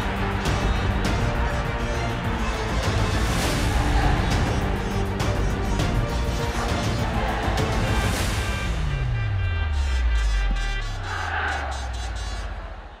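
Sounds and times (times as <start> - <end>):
sports broadcast theme music: 0.0 - 13.0.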